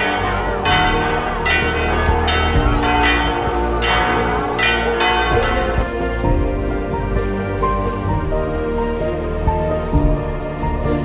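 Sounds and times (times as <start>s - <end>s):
church bells ringing: 0.0s - 8.3s.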